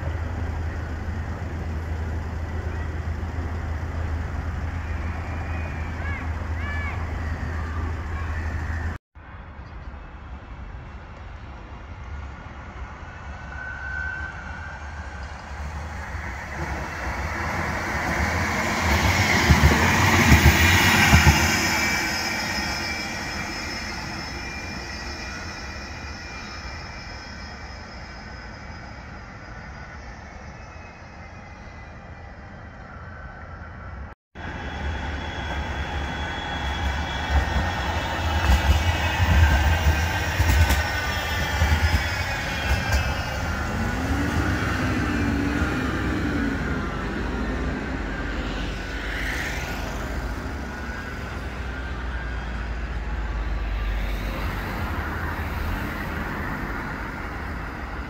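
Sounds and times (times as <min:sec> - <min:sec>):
road traffic passing: 0:00.0 - 0:09.0, 0:34.4 - 0:58.0
tram running past: 0:00.0 - 0:58.0.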